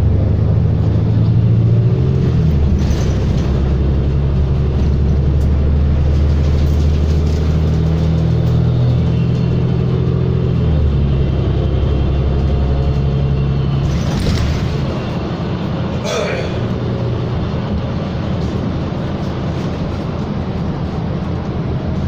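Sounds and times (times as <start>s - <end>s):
bus engine drone: 0.0s - 22.0s
road noise: 0.0s - 22.0s.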